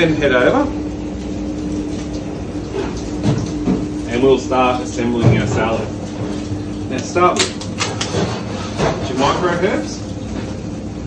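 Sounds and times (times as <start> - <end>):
kitchen machinery humming: 0.0 - 11.0.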